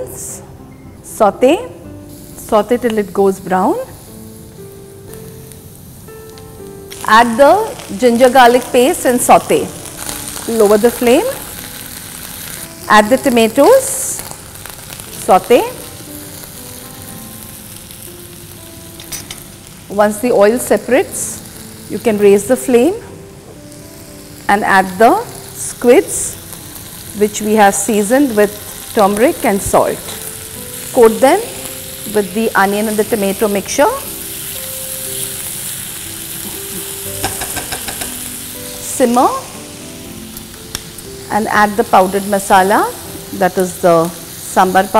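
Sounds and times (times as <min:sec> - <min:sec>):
vegetables sizzling in hot oil: 0:01.0 - 0:44.9.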